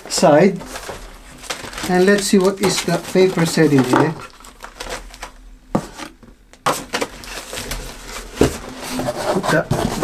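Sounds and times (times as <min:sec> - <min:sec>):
paper and plastic rustling: 0:00.0 - 0:10.0.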